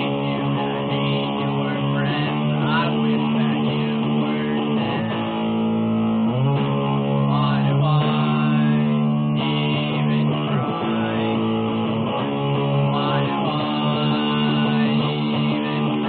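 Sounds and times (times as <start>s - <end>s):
man singing: 0.0s - 5.5s, 7.0s - 11.9s, 12.7s - 16.0s
electric guitar strumming: 0.0s - 16.0s.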